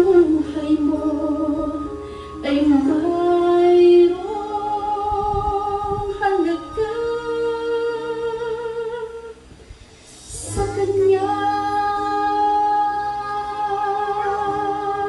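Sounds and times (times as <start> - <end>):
woman singing into microphone: 0.0 - 9.4, 10.3 - 15.0.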